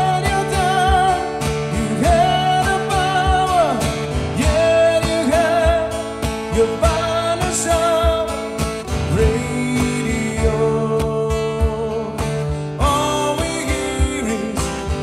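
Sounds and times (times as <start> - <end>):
low thumping beat: 0.0 - 1.3, 2.0 - 12.0, 13.8 - 14.4
acoustic guitar strumming: 0.0 - 15.0
wordless singing: 0.0 - 15.0.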